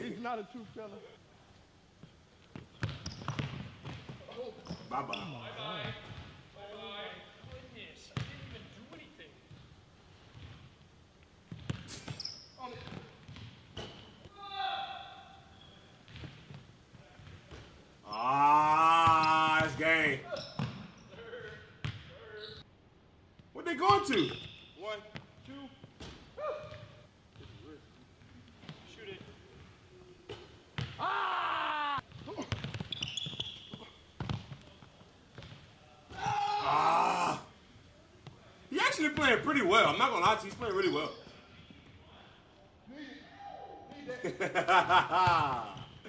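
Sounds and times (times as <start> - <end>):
basketball bouncing on wooden floor: 2.5 - 4.8, 8.2 - 8.5, 11.5 - 12.2, 12.8 - 14.0, 32.1 - 34.6, 35.3 - 35.6
shoe squeak: 2.6 - 5.6, 11.6 - 14.2, 15.5 - 16.0, 20.2 - 21.2, 22.2 - 22.6, 24.0 - 24.8, 32.3 - 34.2, 40.8 - 41.4.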